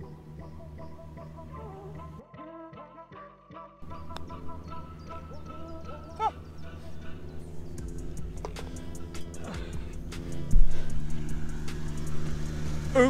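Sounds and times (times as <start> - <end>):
motorised machine humming: 0.0 - 2.2, 3.8 - 13.0.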